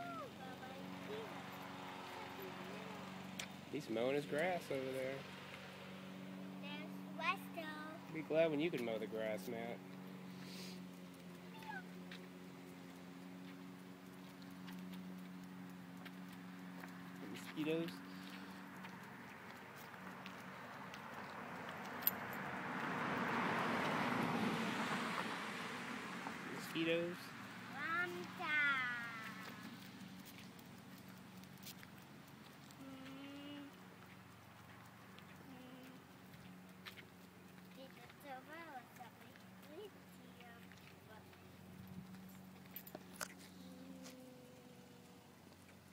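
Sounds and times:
distant lawn mower engine: 0.0 - 45.9.

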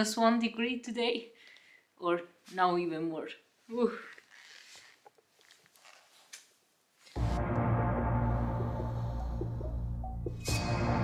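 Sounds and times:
faint clicks and rustles: 4.1 - 7.2.

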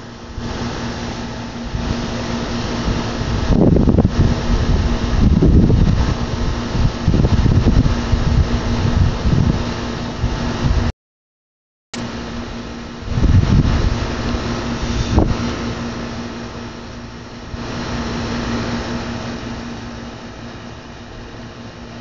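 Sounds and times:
steady mechanical hum: 0.0 - 10.9, 12.0 - 22.0.

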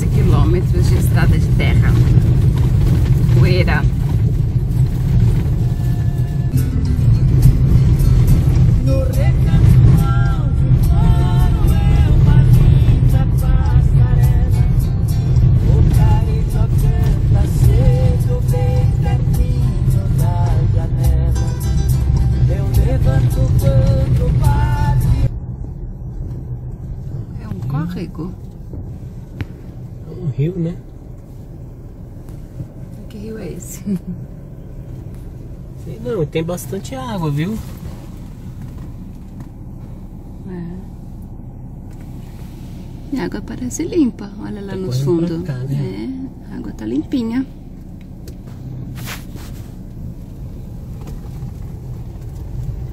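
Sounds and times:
truck engine and tyre rumble: 0.0 - 52.9
music playing: 5.6 - 25.3.

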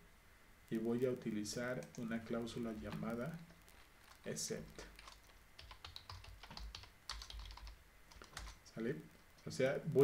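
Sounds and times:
typing on computer keyboard: 5.0 - 8.6.

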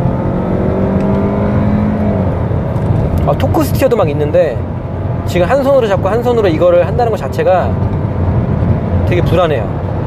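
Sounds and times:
car engine accelerating: 0.0 - 10.0.

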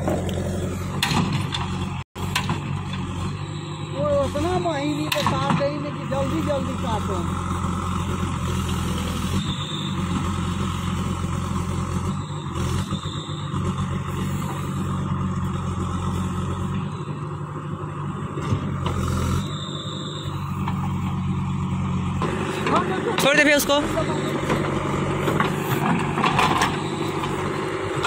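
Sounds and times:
diesel engine under load: 0.0 - 28.0.

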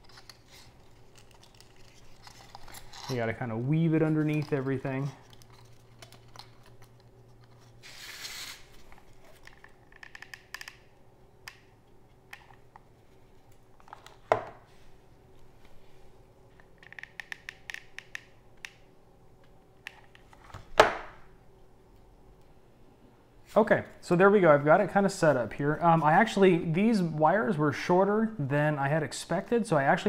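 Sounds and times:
plastic parts clicking and rustling: 0.0 - 7.8, 8.8 - 10.9, 16.6 - 18.7.

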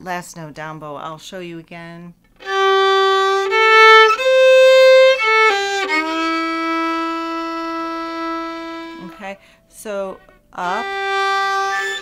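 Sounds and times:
solo fiddle playing country fill: 2.4 - 9.5, 10.2 - 12.0.

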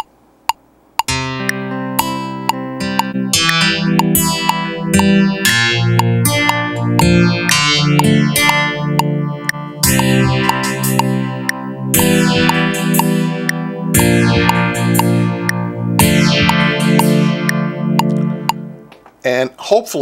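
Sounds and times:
metronome click: 0.0 - 19.0
electric guitar with effects: 1.1 - 19.0.

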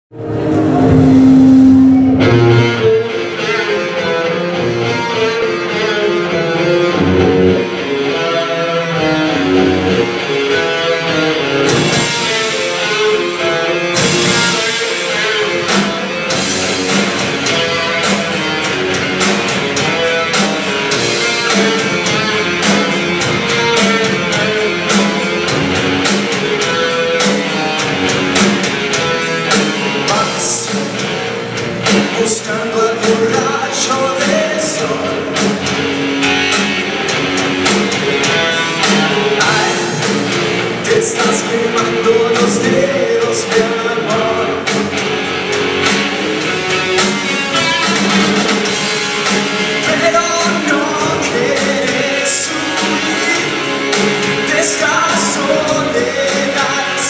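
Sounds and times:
electric guitar notes: 0.1 - 57.0
drum kit steady beat: 11.6 - 57.0.

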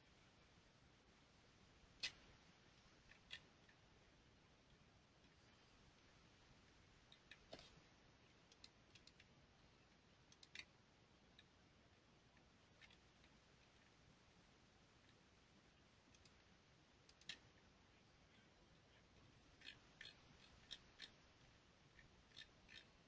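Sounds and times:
faint computer mouse clicks: 8.5 - 9.3, 10.3 - 10.7.

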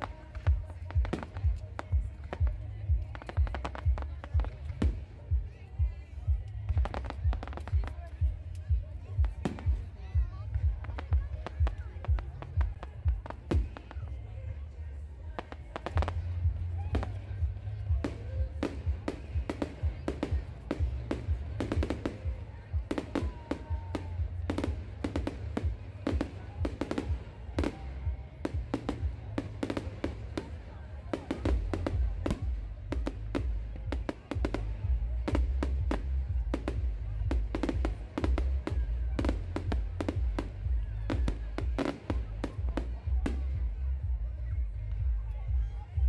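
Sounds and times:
fireworks bangs and crackles: 0.0 - 14.4, 15.3 - 44.8
music: 0.0 - 46.0
voices: 0.0 - 46.0.

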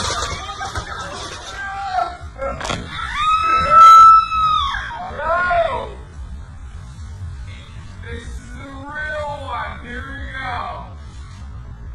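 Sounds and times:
people shouting and crying: 0.0 - 6.1.

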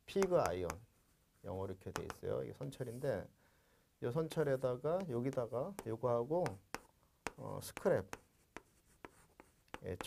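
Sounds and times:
chalk tapping and scratching: 0.1 - 3.1, 4.9 - 10.0.

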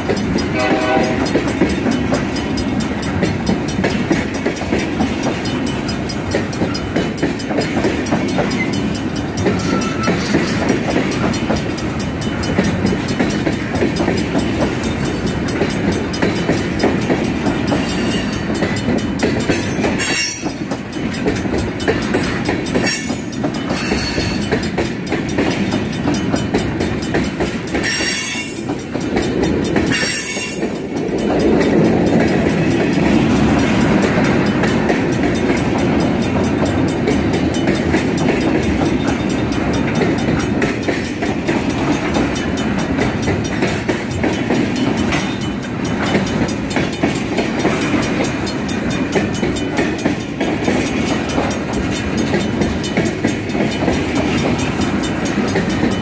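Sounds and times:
train wheels rumbling on rail: 0.0 - 56.0.

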